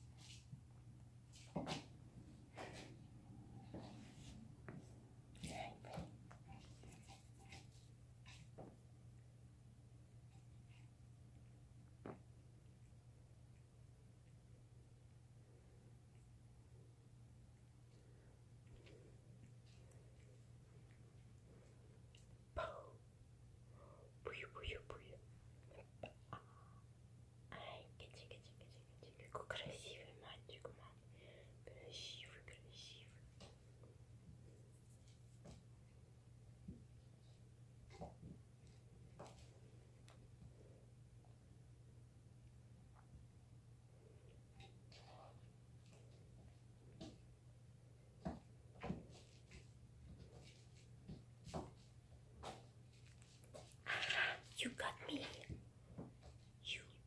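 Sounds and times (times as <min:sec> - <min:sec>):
person whispering: 0:05.4 - 0:06.1, 0:22.5 - 0:23.0, 0:23.8 - 0:26.7, 0:27.5 - 0:33.5, 0:53.9 - 0:55.6, 0:56.6 - 0:57.0.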